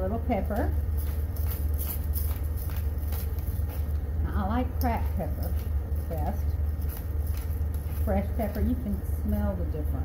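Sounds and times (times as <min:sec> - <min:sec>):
low hum: 0:00.0 - 0:10.0
pepper grinder grinding: 0:00.3 - 0:09.6.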